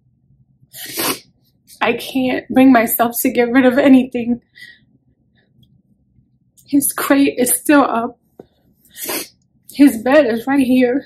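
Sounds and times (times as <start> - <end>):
woman's voice: 1.7 - 4.5, 6.6 - 8.2, 9.7 - 11.0.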